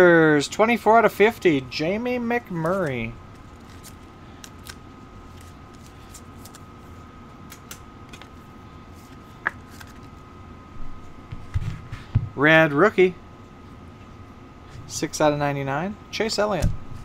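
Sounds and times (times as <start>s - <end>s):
faint steady hum: 0.0s - 17.0s
cards clicking and rustling: 2.5s - 6.7s, 7.4s - 8.4s, 9.0s - 10.2s.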